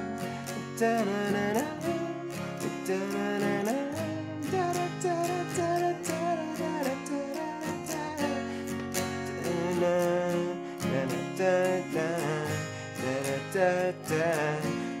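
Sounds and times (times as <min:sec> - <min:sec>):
acoustic guitar strumming: 0:00.0 - 0:15.0.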